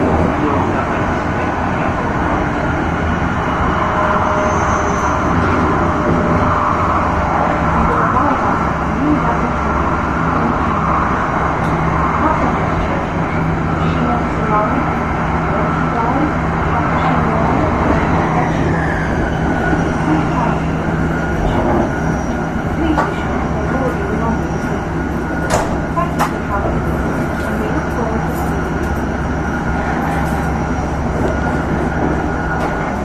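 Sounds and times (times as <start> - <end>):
train interior rumble and hum: 0.0 - 33.0.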